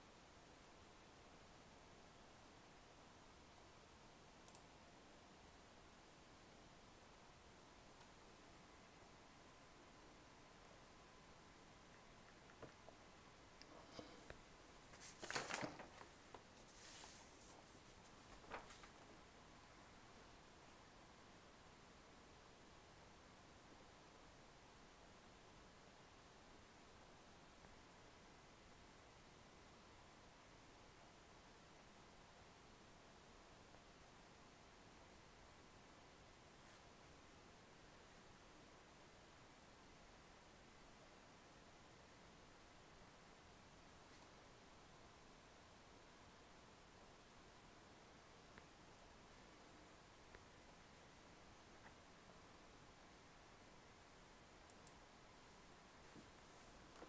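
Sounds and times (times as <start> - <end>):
faint room hiss: 0.0 - 57.0
small tick: 4.4 - 4.7, 54.6 - 55.0.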